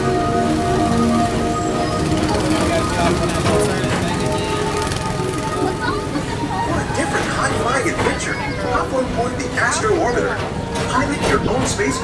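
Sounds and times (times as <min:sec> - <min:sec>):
ride music: 0:00.0 - 0:12.0
small gasoline engines running: 0:00.1 - 0:09.8
voices: 0:01.5 - 0:12.0.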